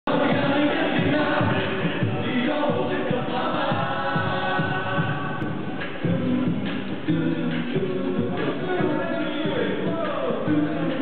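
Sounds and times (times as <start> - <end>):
male choir singing through loudspeakers: 0.1 - 11.0.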